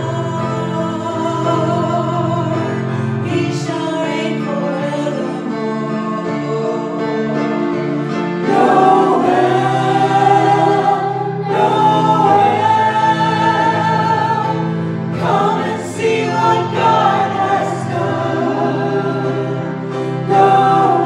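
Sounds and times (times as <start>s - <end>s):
group singing in harmony: 6.2s - 21.0s.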